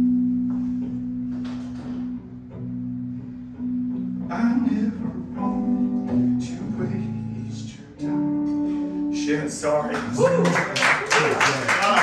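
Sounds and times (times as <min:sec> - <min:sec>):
electric guitar low notes: 0:00.0 - 0:10.5.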